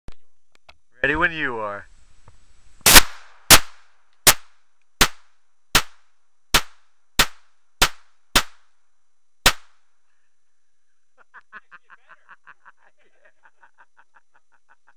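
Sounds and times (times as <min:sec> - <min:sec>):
pistol shots with echo: 0:06.6 - 0:08.6, 0:09.5 - 0:09.8.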